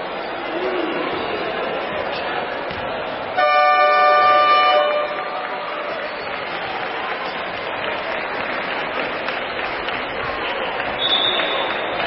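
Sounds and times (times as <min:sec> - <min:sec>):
crowd hubbub: 0:00.0 - 0:12.0
arena horn buzzing blast: 0:03.4 - 0:06.0.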